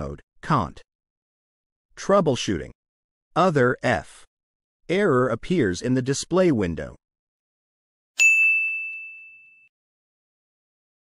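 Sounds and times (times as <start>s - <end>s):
bell-like chime: 8.2s - 9.7s.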